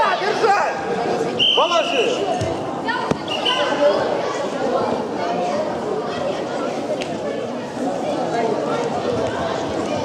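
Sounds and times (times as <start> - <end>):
referee's whistle blast: 1.4 - 2.2.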